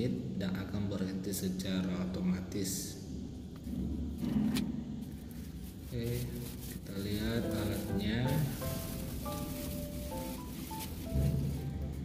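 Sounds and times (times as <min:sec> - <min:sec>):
paper rustling: 0:05.0 - 0:12.0.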